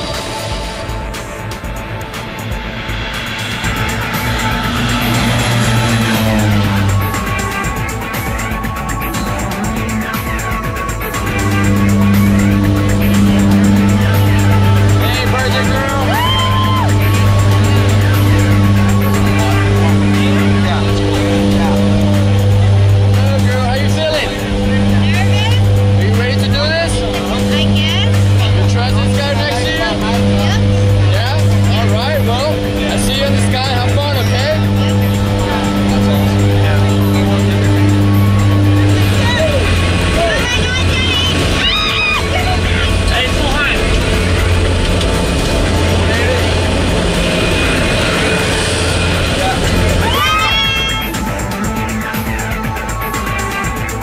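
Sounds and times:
background music: 0.0 - 54.0
plane engines droning: 0.0 - 54.0
propeller airplane taking off: 0.0 - 54.0
voices talking: 0.0 - 54.0.

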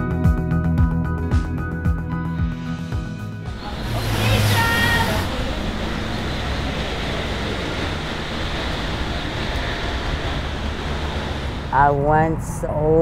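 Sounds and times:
low traffic rumble: 3.2 - 13.0
woman's voice: 11.7 - 13.0.

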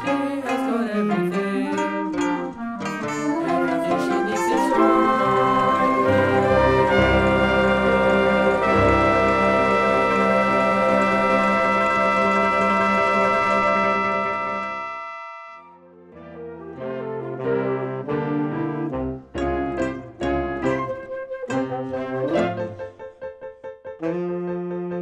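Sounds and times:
instrumental passage: 0.0 - 25.0
brass section sustained chord: 3.3 - 19.3.

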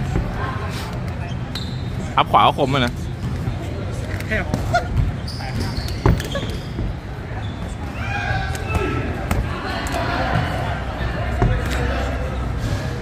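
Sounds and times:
people shouting coaching: 7.8 - 12.5.

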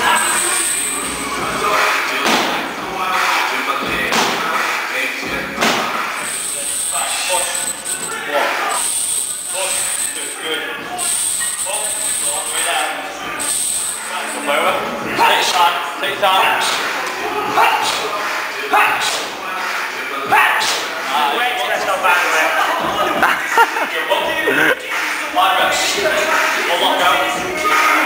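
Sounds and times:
indistinct voices: 0.0 - 28.0.

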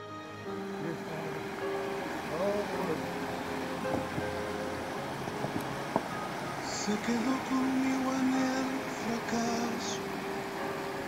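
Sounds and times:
background music: 0.0 - 11.0
stream water rushing: 0.0 - 11.0
voices: 0.8 - 4.6, 6.6 - 10.1.

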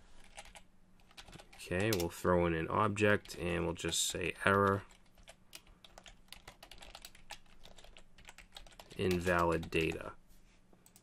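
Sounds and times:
typing on computer keyboard: 0.2 - 2.1, 4.6 - 10.0.

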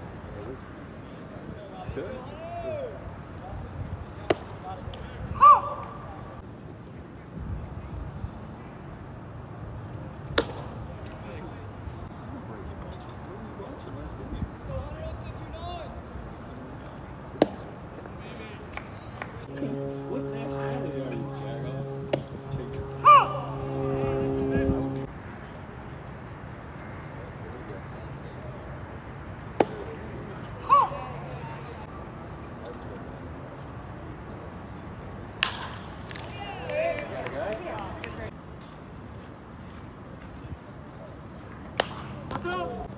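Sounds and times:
ballpark background: 0.0 - 42.9
faint distant voices: 0.1 - 38.4
bat cracking a baseball: 10.3 - 10.8, 17.4 - 17.7, 35.4 - 36.3, 41.7 - 42.5.

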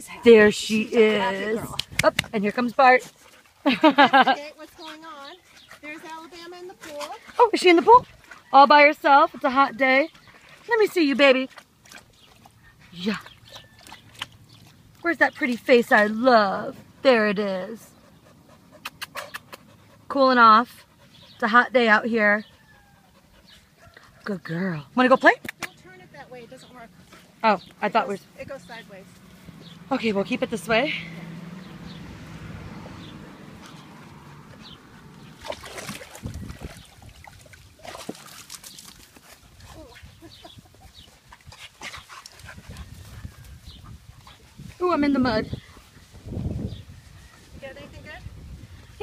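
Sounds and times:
dogs playing: 0.0 - 47.6
dog panting: 3.0 - 8.5, 17.8 - 24.3, 39.2 - 44.8.

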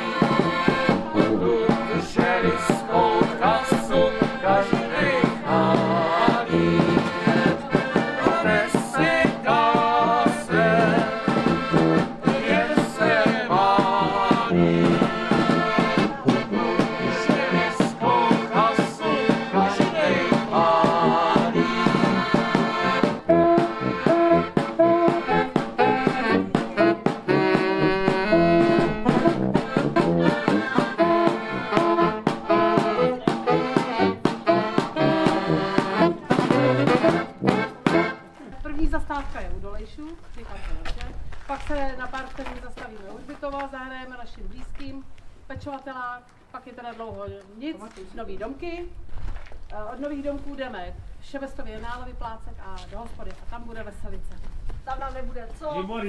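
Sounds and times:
accordion and saxophone band: 0.0 - 39.0.

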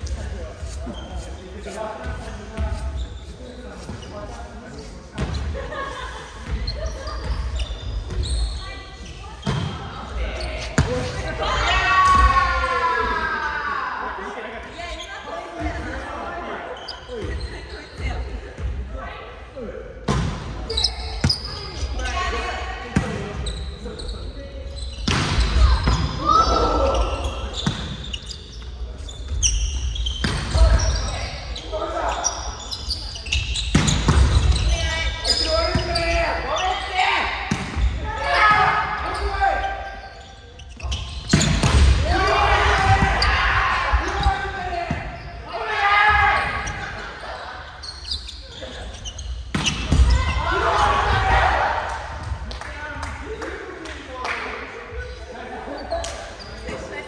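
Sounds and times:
players calling and shouting: 0.0 - 57.0.

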